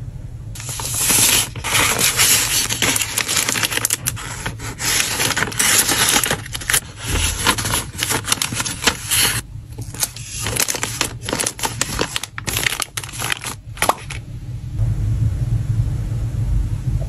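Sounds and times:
paper bag crinkling: 0.6s - 14.2s
soft low bump: 14.6s - 17.0s.

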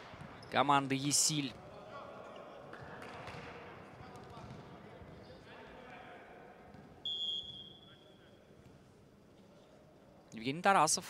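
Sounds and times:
sports hall murmur: 0.0s - 11.0s
referee's whistle: 7.0s - 8.2s.

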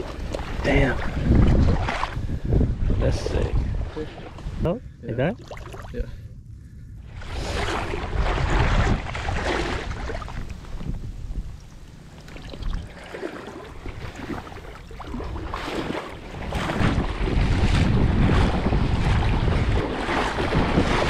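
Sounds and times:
wind buffeting microphone: 0.0s - 13.0s, 13.6s - 21.0s
wading through shallow water: 0.0s - 21.0s.

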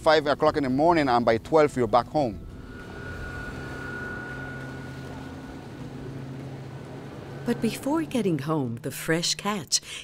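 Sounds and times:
boat motor running: 0.6s - 8.8s
thin high whine: 1.5s - 8.5s.

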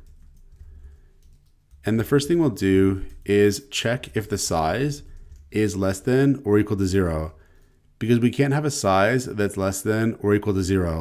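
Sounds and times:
faint keyboard keystrokes: 0.0s - 5.6s.

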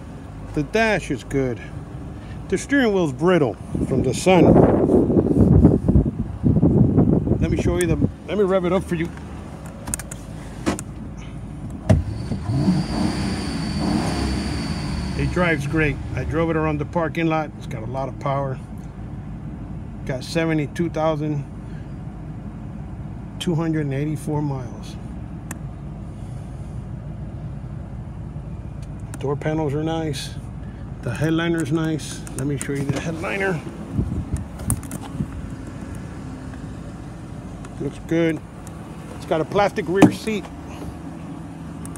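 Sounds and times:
car engine idling and revving: 0.0s - 41.9s.

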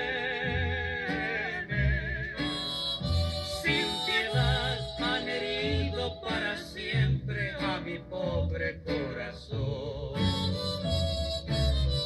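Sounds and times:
ranchera song over fm radio: 0.0s - 11.0s.

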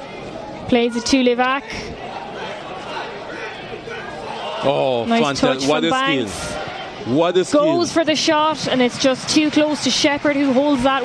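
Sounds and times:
murmur of stadium crowd: 0.0s - 11.0s.

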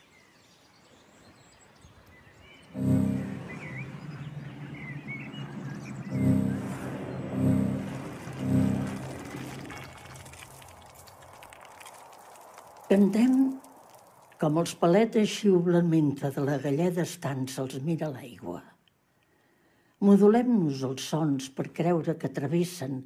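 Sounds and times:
birds chirping: 0.0s - 9.8s
deep low music chord: 2.8s - 4.4s, 6.1s - 9.8s.

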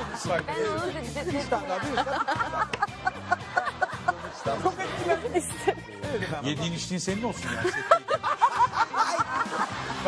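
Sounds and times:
background music: 0.0s - 10.0s
man laughing: 7.4s - 10.0s.

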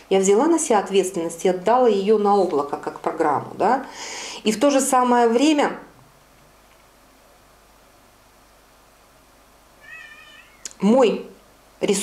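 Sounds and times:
woman talking: 0.0s - 6.0s, 10.7s - 12.0s
high wavering cry: 9.8s - 10.7s.

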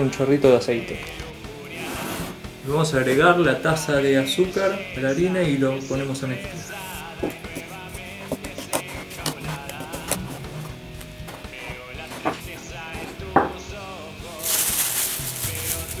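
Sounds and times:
background guitar music: 0.0s - 16.0s
plastic bag crinkling: 14.3s - 16.0s.

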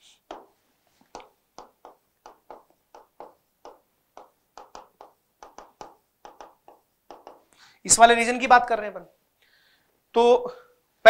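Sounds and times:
marker tapping and scratching whiteboard: 0.2s - 7.6s.

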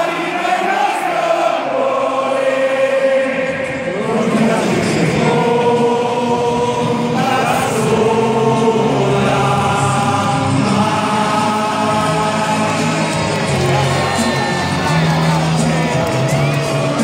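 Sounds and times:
stadium crowd singing: 0.0s - 17.0s.

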